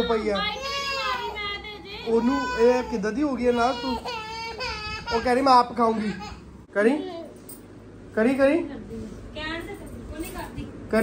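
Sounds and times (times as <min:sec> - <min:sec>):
toddler girl crying and whining: 0:00.0 - 0:06.4.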